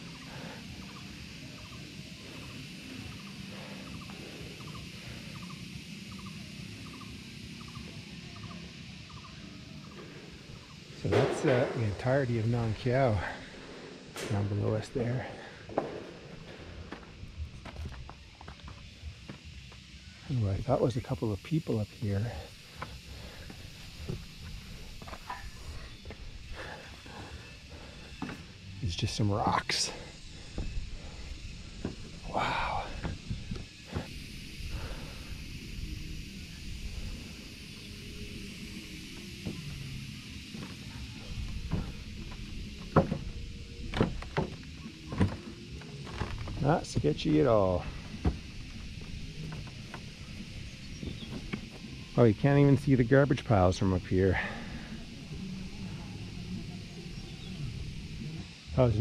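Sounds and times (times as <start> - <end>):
footsteps on wooden boards: 15.7 - 19.8, 48.0 - 50.1, 51.0 - 51.8
footsteps on rock: 16.9 - 19.4
wind rumbling on microphone: 30.2 - 40.0.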